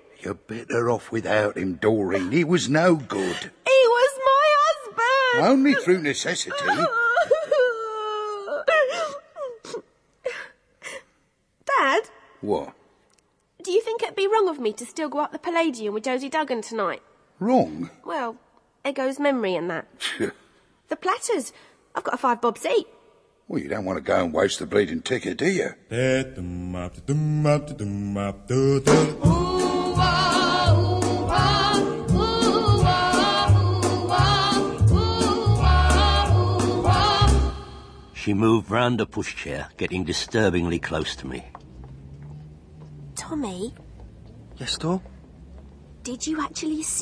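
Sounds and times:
woman wailing tearfully: 0:04.9 - 0:10.5
voices singing slow held notes: 0:25.9 - 0:38.2.

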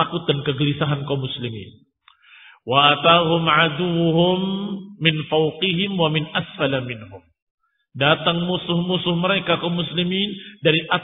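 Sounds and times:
man chanting a melodic recitation: 0:02.7 - 0:07.2, 0:08.0 - 0:11.0.

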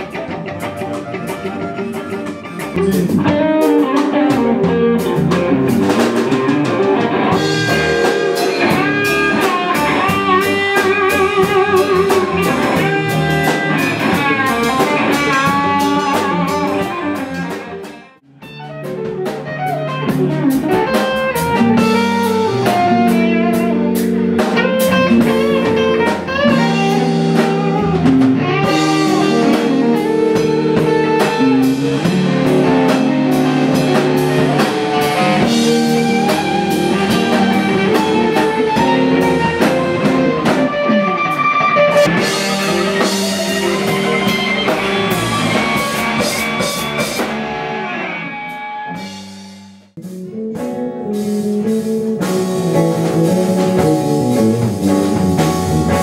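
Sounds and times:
blues band playing live: 0:00.0 - 0:56.0
electric guitar held chords: 0:00.0 - 0:56.0.

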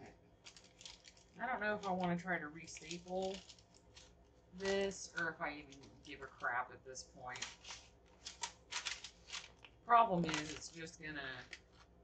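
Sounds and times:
paper rustling: 0:00.4 - 0:02.1, 0:02.7 - 0:06.5, 0:07.3 - 0:12.0.

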